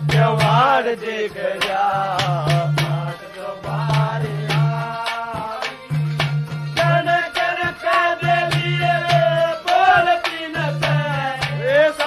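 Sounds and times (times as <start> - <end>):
man singing folk melody: 0.0 - 5.9, 6.8 - 12.0.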